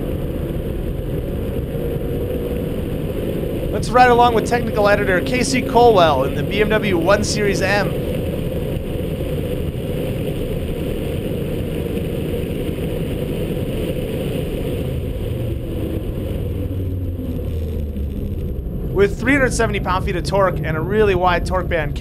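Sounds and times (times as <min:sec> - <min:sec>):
road and wind noise: 0:00.0 - 0:22.0
car engine running hard: 0:12.0 - 0:22.0.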